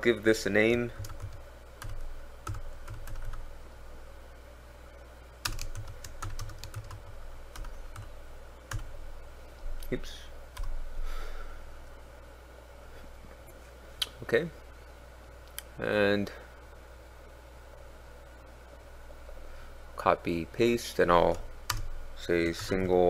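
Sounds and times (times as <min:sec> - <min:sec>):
typing on a computer keyboard: 0:01.0 - 0:03.4, 0:05.4 - 0:08.1.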